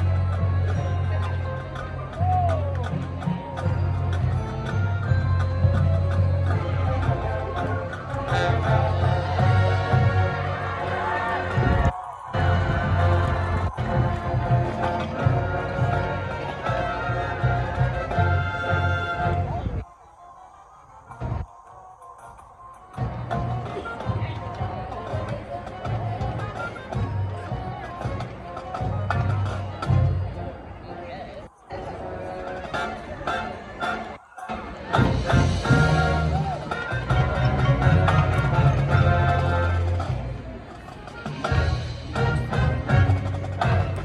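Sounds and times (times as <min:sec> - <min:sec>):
marching band playing: 0:00.0 - 0:31.1, 0:31.7 - 0:44.0.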